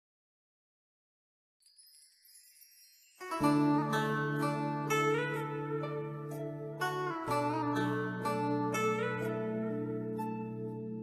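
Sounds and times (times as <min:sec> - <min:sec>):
high tinkling chimes: 0:01.6 - 0:04.2.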